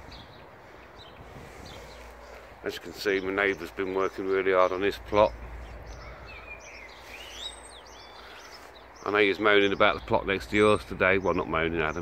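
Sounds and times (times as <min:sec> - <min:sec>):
birds chirping and whistling: 0:00.0 - 0:12.0
low outdoor rumble: 0:00.0 - 0:12.0.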